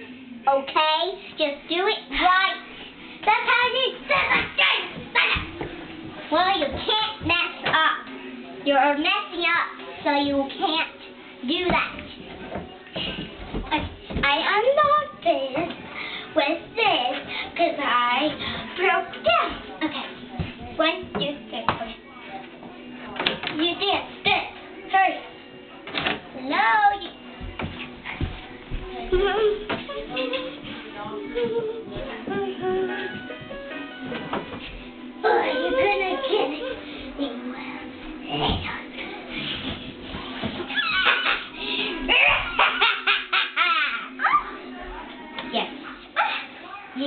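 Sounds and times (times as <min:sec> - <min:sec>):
girls vocalising: 0:35.2 - 0:36.9, 0:40.7 - 0:42.7.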